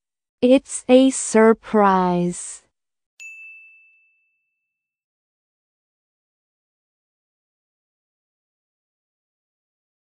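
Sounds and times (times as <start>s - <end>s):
bell-like ding: 3.2s - 4.9s.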